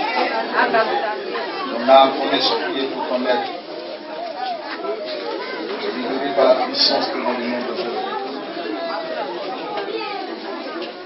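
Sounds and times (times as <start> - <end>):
background chatter: 0.0 - 11.0.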